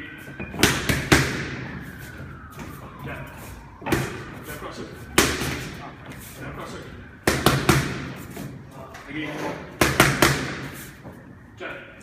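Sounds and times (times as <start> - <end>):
boxing gloves smacking mitts: 3.8 - 4.2, 5.2 - 5.8, 7.2 - 8.6, 9.8 - 10.8.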